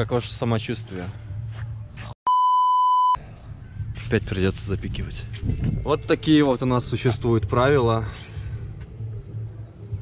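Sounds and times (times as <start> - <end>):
high-pitched censor beep: 2.3 - 3.2.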